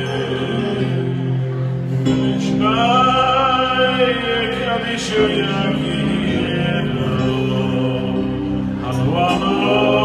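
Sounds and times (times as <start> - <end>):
man singing into a microphone: 0.0 - 10.0.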